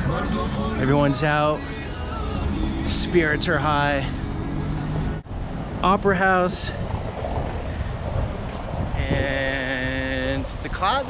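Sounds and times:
city street rumble: 0:00.0 - 0:11.0
wind on microphone: 0:02.3 - 0:11.0.

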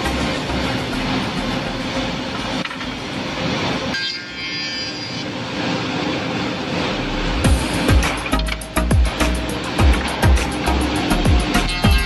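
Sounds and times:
high machine whine: 0:00.0 - 0:12.0
woodworking machine running: 0:00.0 - 0:12.0.

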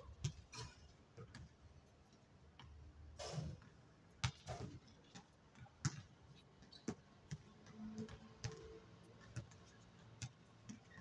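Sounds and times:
basketball bouncing: 0:04.2 - 0:04.7, 0:05.8 - 0:06.1, 0:06.8 - 0:08.7, 0:10.2 - 0:11.0.

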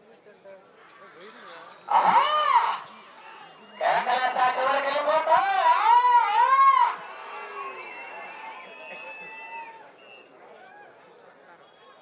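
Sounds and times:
crowd noise: 0:00.0 - 0:12.0
man shouting: 0:03.8 - 0:06.9.

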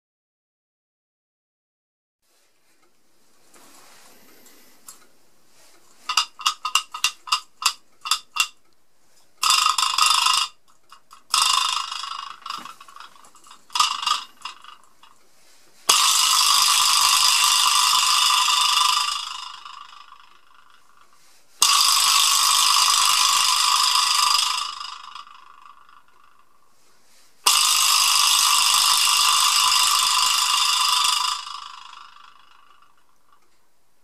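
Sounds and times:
vibraslap buzzing rattle: 0:05.9 - 0:08.7, 0:09.4 - 0:26.8, 0:27.4 - 0:33.4.

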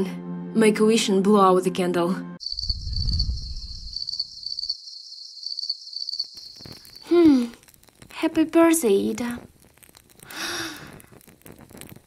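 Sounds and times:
cricket chirping: 0:02.4 - 0:07.5
low rumble: 0:02.5 - 0:04.2.

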